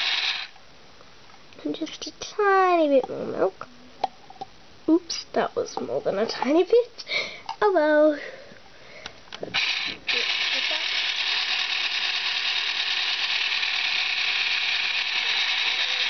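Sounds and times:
electric food mixer whirring: 0:00.0 - 0:00.5, 0:09.6 - 0:16.0.

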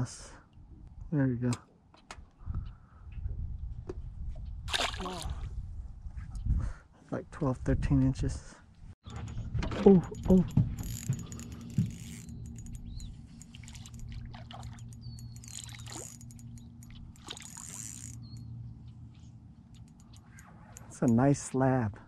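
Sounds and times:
steady low hum: 0:09.1 - 0:22.0
fish splashing in water: 0:13.5 - 0:16.2.

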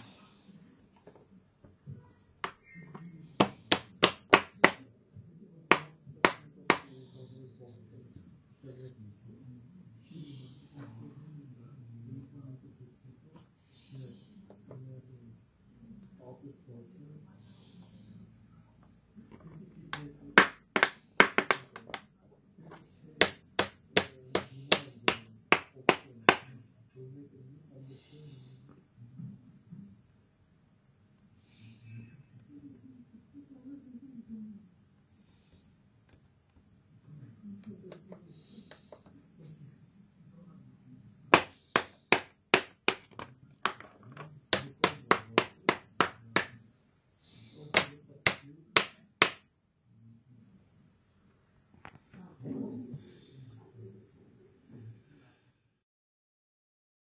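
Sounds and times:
fingertip tapping on plastic: 0:03.4 - 0:04.8, 0:05.7 - 0:06.9, 0:41.4 - 0:46.6.

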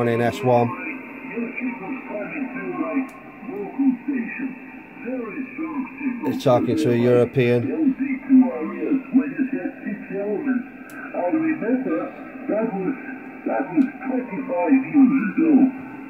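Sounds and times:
radio speech through speaker: 0:00.0 - 0:16.0.

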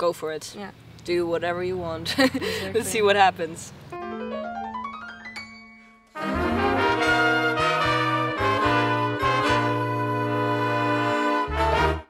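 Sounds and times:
jazz brass section playing: 0:06.1 - 0:12.0
low bass line: 0:06.2 - 0:12.0.

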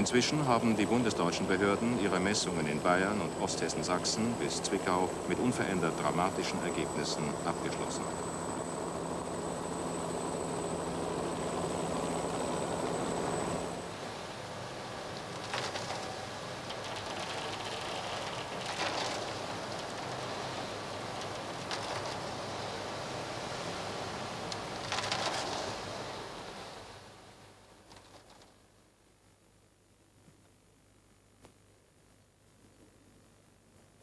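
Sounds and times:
helicopter rotor and engine humming: 0:00.0 - 0:26.6.

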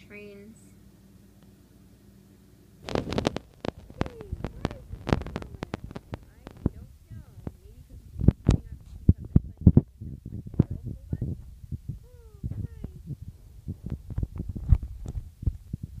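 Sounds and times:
finger handling noise on phone: 0:02.8 - 0:06.8, 0:13.7 - 0:15.6.

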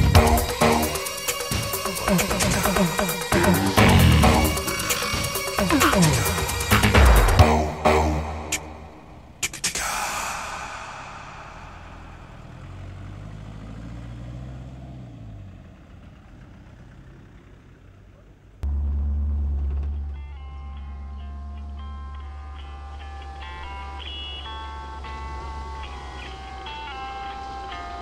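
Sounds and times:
background music wash: 0:00.0 - 0:12.8
heavy bass drone: 0:00.0 - 0:13.2, 0:18.6 - 0:24.0
low rumble: 0:03.3 - 0:05.6, 0:06.6 - 0:13.4.

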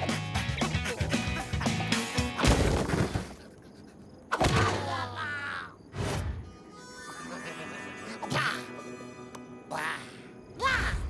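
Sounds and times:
cartoon character cries: 0:04.7 - 0:05.8, 0:06.6 - 0:08.9
quiet background music: 0:06.2 - 0:11.0.

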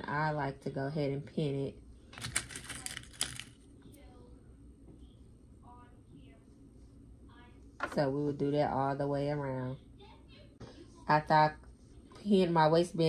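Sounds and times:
pins clicking: 0:02.2 - 0:03.6.

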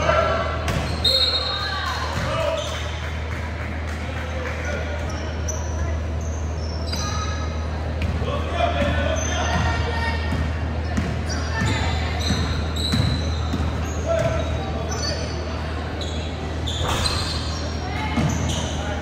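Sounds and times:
sneakers squeaking: 0:00.0 - 0:03.2, 0:04.3 - 0:19.0.

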